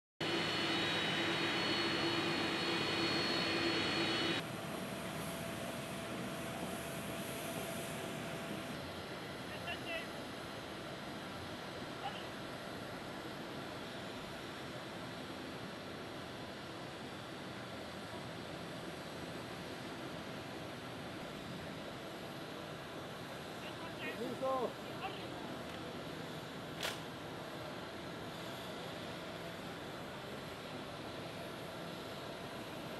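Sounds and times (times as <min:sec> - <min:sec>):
jet engines whining: 0:00.2 - 0:08.8.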